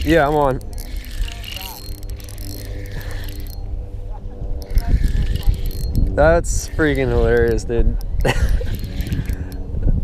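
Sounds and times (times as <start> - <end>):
ratcheting clicks: 0.0 - 3.6, 4.6 - 9.6
fishing reel gears whirring: 0.0 - 3.7, 4.6 - 9.8.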